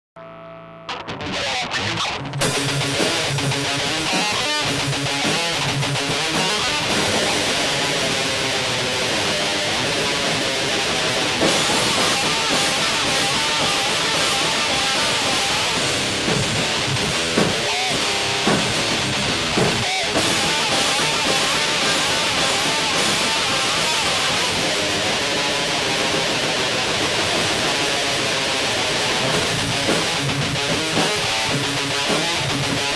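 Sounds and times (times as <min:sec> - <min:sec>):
electric guitar strummed: 0:00.2 - 0:32.9
rock band playing: 0:00.9 - 0:32.9
drums and cymbals: 0:02.4 - 0:32.9.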